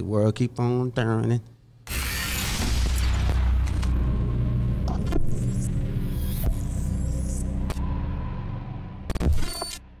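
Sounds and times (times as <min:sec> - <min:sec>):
bright glitchy burst: 0:01.9 - 0:03.5
deep rumbling drone: 0:02.0 - 0:09.2.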